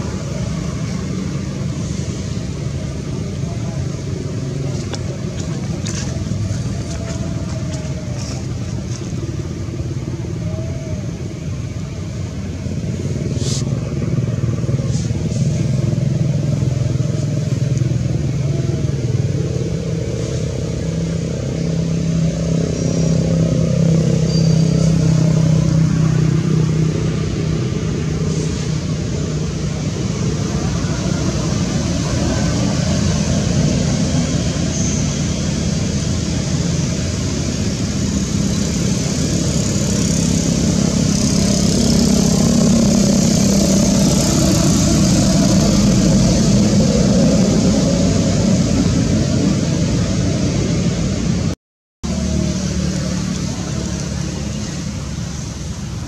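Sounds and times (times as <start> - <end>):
vehicle engine droning: 0.0 - 56.0.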